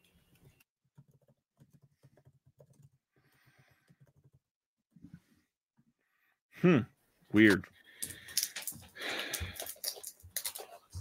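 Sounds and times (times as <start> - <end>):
tapping on computer keyboard: 1.0 - 3.0.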